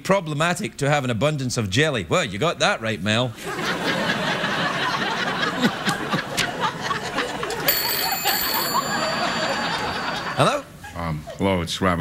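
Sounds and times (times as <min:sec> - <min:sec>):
people laughing: 0:03.4 - 0:11.5
telephone bell ringing: 0:07.6 - 0:10.4.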